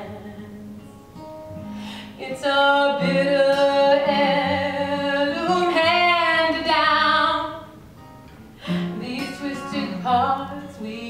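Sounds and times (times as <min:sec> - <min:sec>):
woman singing: 0:00.0 - 0:00.8, 0:02.0 - 0:07.7, 0:08.6 - 0:11.0
plucked acoustic guitar: 0:00.0 - 0:11.0.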